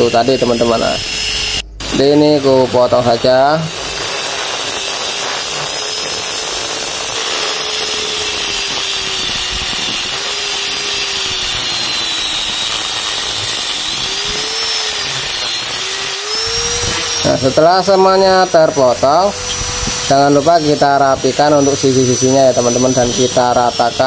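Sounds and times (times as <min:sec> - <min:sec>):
angle grinder cutting steel: 0:00.0 - 0:24.0.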